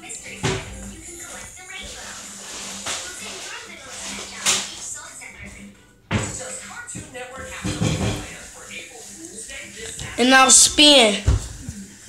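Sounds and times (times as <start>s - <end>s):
indistinct voices talking: 9.9s - 11.2s.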